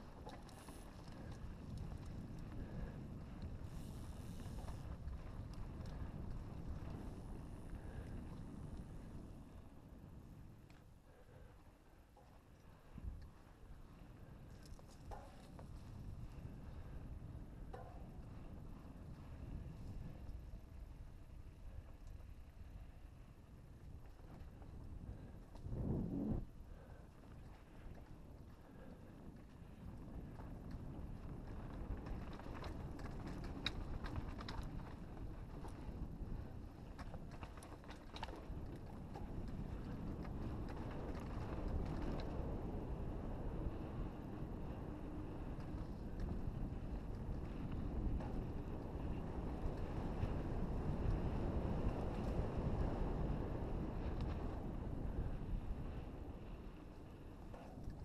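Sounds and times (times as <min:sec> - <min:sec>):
tyres rolling over dirt trail: 0:00.0 - 0:58.0
wind rushing over microphone: 0:24.6 - 0:27.0.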